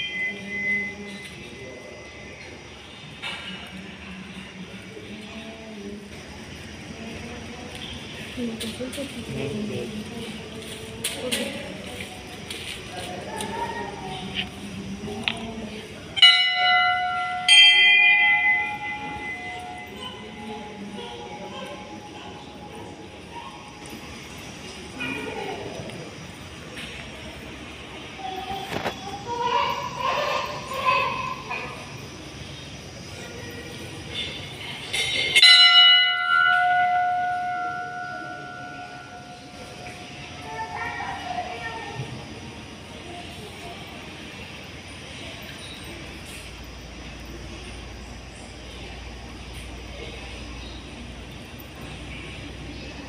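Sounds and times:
metal temple bell ringing: 0:00.0 - 0:01.6, 0:16.2 - 0:21.6, 0:34.1 - 0:41.2.

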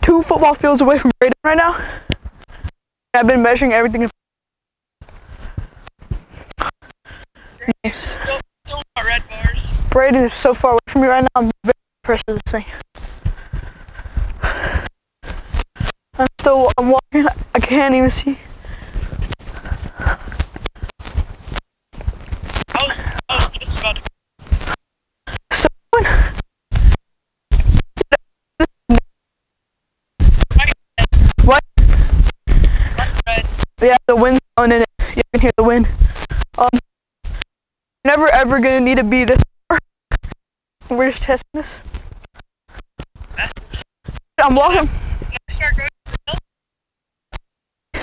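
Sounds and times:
radio crackle: 0:00.1 - 0:04.2, 0:05.0 - 0:29.0, 0:30.2 - 0:37.5, 0:38.1 - 0:46.4
footsteps walking: 0:02.0 - 0:02.8, 0:05.0 - 0:08.3, 0:09.2 - 0:11.4, 0:12.2 - 0:25.5, 0:26.1 - 0:28.0, 0:30.2 - 0:33.8, 0:37.2 - 0:37.5, 0:41.8 - 0:46.2
broken voice fragments: 0:07.6 - 0:12.9, 0:15.8 - 0:18.5, 0:22.5 - 0:29.0, 0:30.2 - 0:37.4, 0:38.1 - 0:46.4
wind noise: 0:09.0 - 0:10.8, 0:16.6 - 0:24.8, 0:26.0 - 0:28.2, 0:30.2 - 0:33.8, 0:35.0 - 0:37.4, 0:43.2 - 0:46.4
wind rumbling on a microphone: 0:09.3 - 0:10.0, 0:26.7 - 0:27.9, 0:30.2 - 0:33.8, 0:44.4 - 0:46.0.

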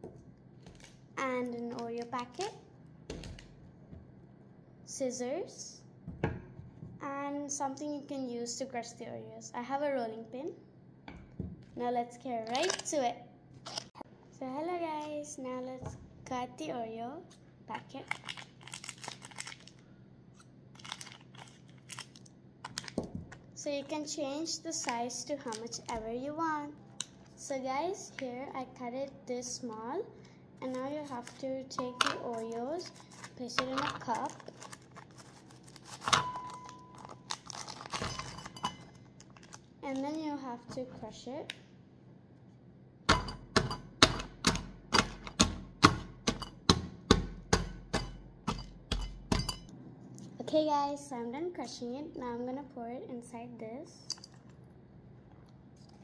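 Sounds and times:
plastic wrapper crinkling: 0:18.0 - 0:19.8, 0:20.7 - 0:23.4, 0:32.3 - 0:40.2
scissors snipping plastic wrapper: 0:31.2 - 0:38.3.

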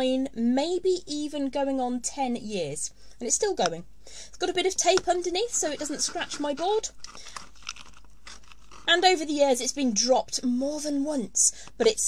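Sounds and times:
tape crinkling: 0:04.9 - 0:09.0.

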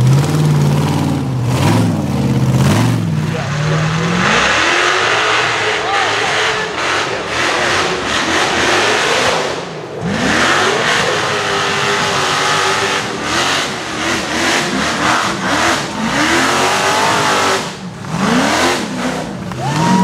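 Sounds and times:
buggy engine revving: 0:00.0 - 0:20.0.

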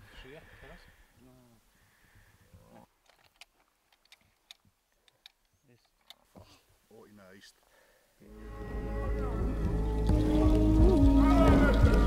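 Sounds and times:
faint clicks and ticks: 0:03.0 - 0:06.3.

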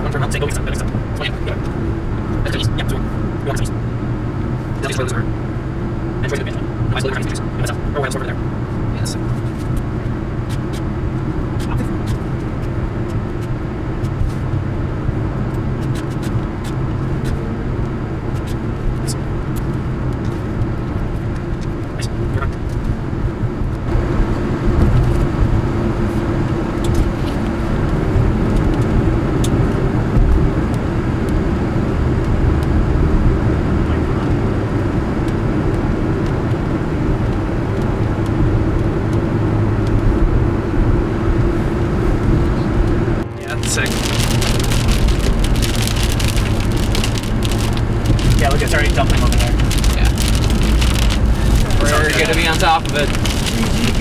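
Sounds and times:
car road and engine noise: 0:00.0 - 0:54.0.

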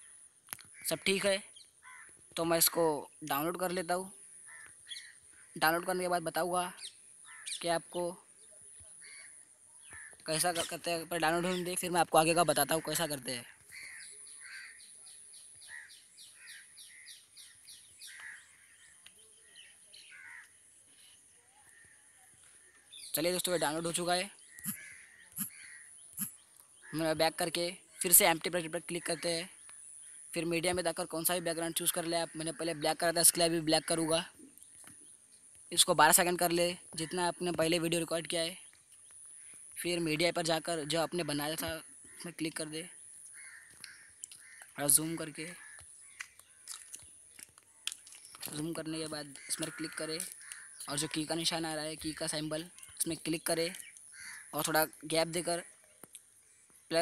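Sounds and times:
longer bird calls: 0:00.0 - 0:35.9, 0:36.8 - 0:57.0.

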